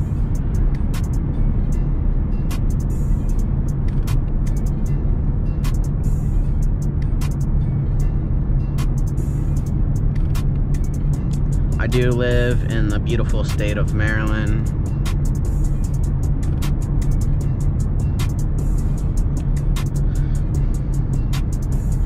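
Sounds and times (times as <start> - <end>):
car engine and tyre drone: 0.0 - 22.0
music: 0.0 - 22.0.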